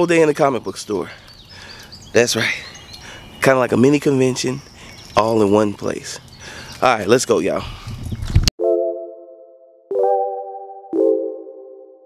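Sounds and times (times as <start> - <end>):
outdoor ambience: 0.0 - 8.5
synthesized chime chords: 8.6 - 12.0.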